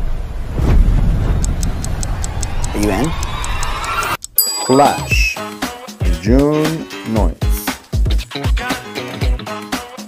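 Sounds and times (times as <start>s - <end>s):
fast clock-like ticking: 1.4s - 4.4s
person speaking: 4.4s - 5.4s.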